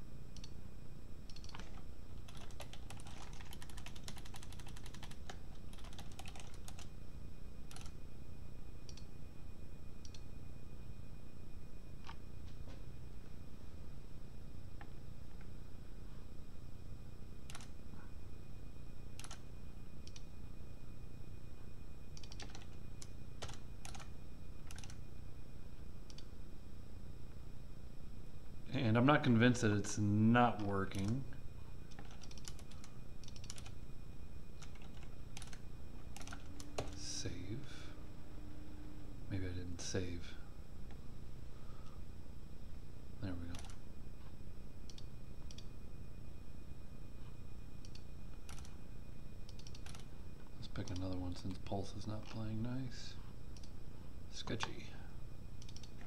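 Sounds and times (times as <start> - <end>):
steady low hum: 0.0 - 56.0
typing on computer keyboard: 1.3 - 6.9, 7.7 - 8.0, 17.5 - 17.7, 19.2 - 19.4, 22.2 - 24.1, 24.7 - 25.0, 31.9 - 33.7, 34.6 - 35.6, 36.2 - 37.0, 43.5 - 43.8, 47.9 - 48.8, 49.5 - 50.1.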